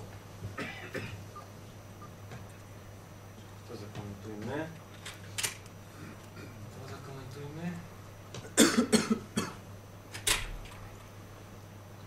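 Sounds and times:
steady low room hum: 0:00.0 - 0:12.0
person coughing: 0:00.6 - 0:01.2, 0:08.4 - 0:09.6.

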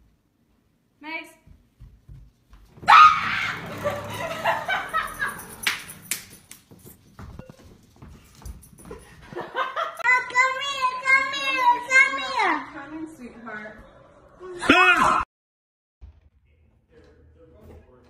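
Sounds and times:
woman screaming: 0:02.8 - 0:04.1.

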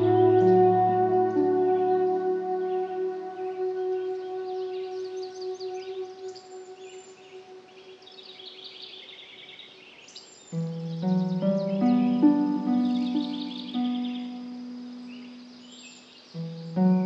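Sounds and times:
ambient music chord: 0:00.0 - 0:08.6, 0:10.6 - 0:15.8, 0:16.4 - 0:17.0
birdsong chirps and trills: 0:00.0 - 0:17.0.

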